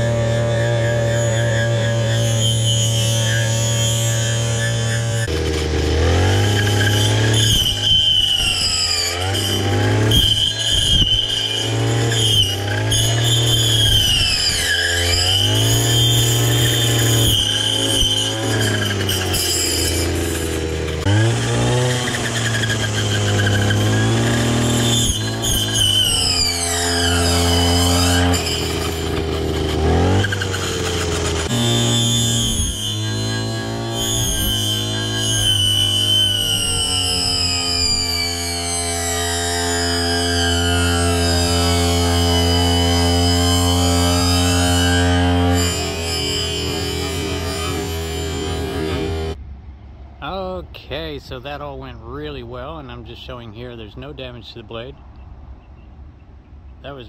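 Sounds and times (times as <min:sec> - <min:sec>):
brush cutter engine revving: 0:00.0 - 0:49.4.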